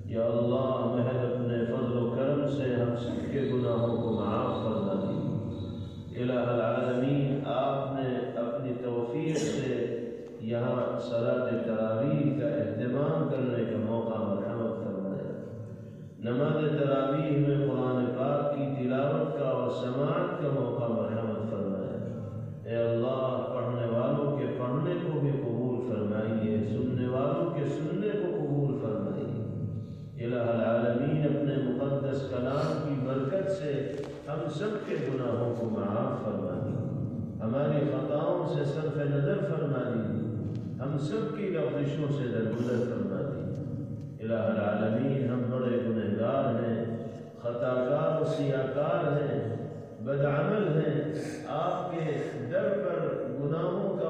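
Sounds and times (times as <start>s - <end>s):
man chanting: 0.0s - 43.6s, 44.2s - 54.0s.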